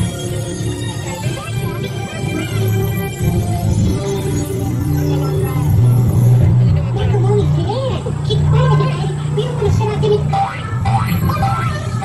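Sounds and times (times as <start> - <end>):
voices speaking: 4.0 - 12.0.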